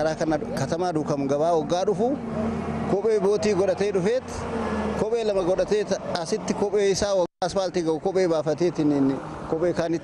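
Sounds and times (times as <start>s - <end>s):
man talking: 0.0s - 2.2s, 2.9s - 10.0s
vehicle engine running: 0.0s - 7.2s.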